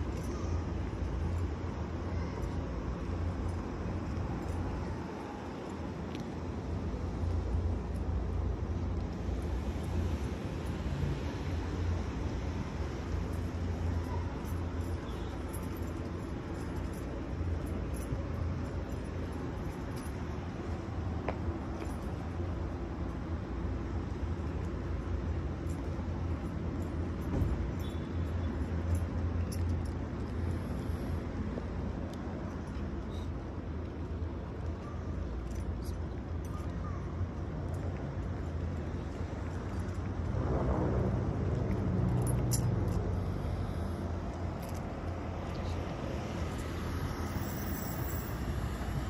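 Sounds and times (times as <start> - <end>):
road traffic rumble: 0.0 - 49.0.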